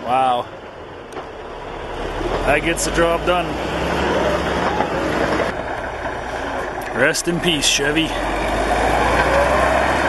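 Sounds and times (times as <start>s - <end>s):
bulldozer diesel engine running: 0.0s - 10.0s.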